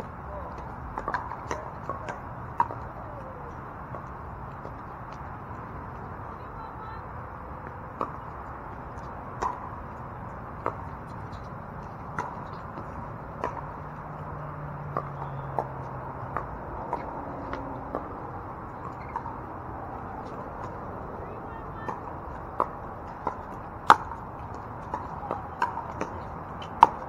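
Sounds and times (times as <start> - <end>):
paddles popping pickleball: 0.4 - 5.7, 7.7 - 18.2, 18.8 - 19.4, 21.6 - 27.0.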